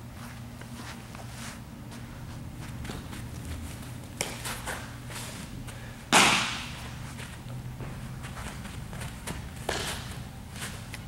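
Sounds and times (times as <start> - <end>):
bat cracking against ball: 6.1 - 6.9, 9.6 - 10.2.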